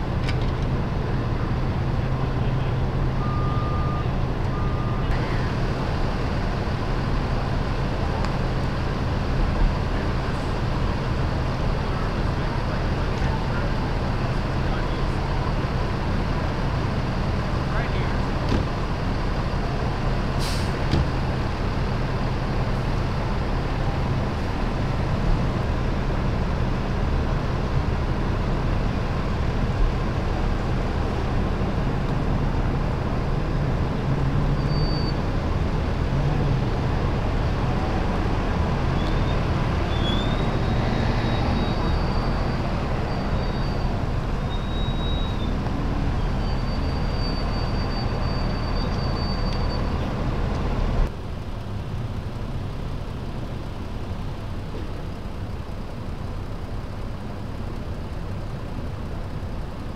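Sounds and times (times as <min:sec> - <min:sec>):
diesel fire engine idling: 0:00.0 - 0:59.9
faint high-pitched whistling: 0:39.0 - 0:45.6.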